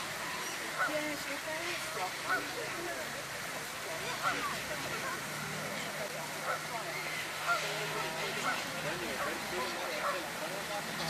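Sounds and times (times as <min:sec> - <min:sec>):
gulls squawking: 0:00.0 - 0:03.0, 0:04.0 - 0:11.0
fountains splashing: 0:00.0 - 0:11.0.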